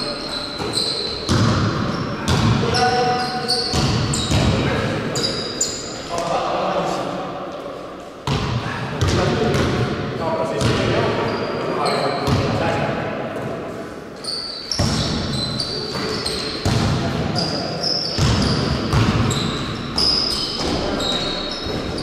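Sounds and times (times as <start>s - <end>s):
shoe squeaks: 0.0s - 6.2s, 11.1s - 12.3s, 14.2s - 16.7s, 17.3s - 22.0s
basketball bouncing on court: 0.6s - 2.9s, 3.6s - 4.7s, 8.2s - 9.8s, 10.6s - 10.9s, 14.7s - 17.5s, 18.1s - 22.0s.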